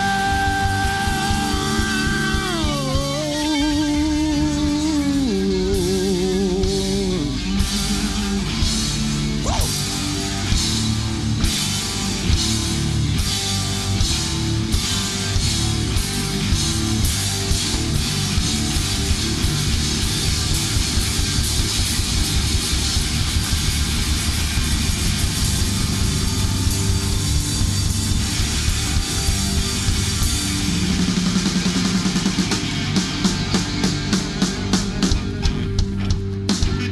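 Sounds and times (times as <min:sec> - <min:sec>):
drum kit: 0:00.0 - 0:36.9
electric guitars: 0:00.0 - 0:36.9.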